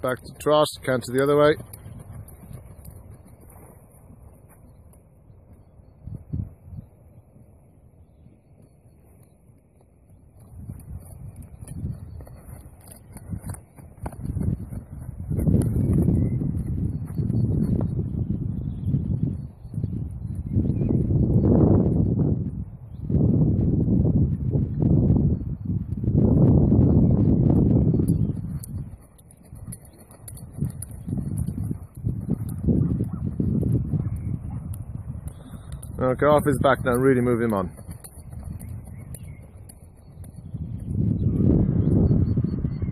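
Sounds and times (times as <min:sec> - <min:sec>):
wind buffeting microphone: 0:00.0 - 0:42.9.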